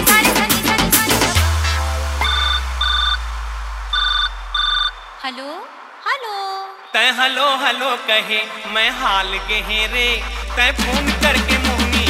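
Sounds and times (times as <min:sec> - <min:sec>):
deep bass note: 0:01.1 - 0:05.2, 0:09.0 - 0:12.0
short electronic beeps: 0:02.2 - 0:03.3, 0:03.9 - 0:05.2.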